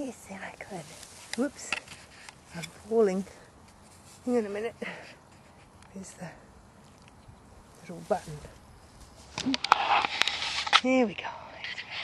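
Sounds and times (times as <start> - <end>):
woman speaking: 0.0 - 1.8, 2.5 - 3.4, 4.2 - 5.1, 5.9 - 6.5, 7.8 - 8.6, 10.8 - 11.8
hands rustling on camera: 0.3 - 10.9.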